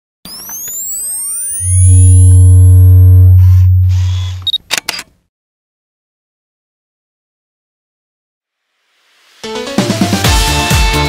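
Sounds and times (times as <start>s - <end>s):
rising electronic sweeping tones: 0.3s - 4.5s
loud low electronic hum: 1.5s - 4.5s.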